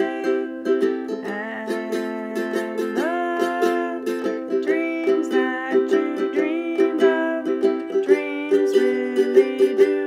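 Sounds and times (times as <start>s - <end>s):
sliding melody line: 0.0s - 10.0s
ukulele strumming chords: 0.0s - 10.0s.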